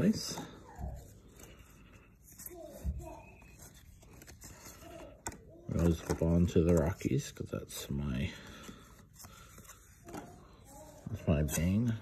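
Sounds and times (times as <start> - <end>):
trading cards being shuffled: 3.4 - 7.2.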